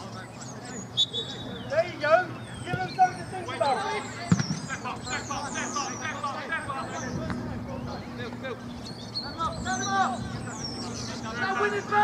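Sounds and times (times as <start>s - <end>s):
players shouting: 1.8s - 7.3s, 9.4s - 12.0s.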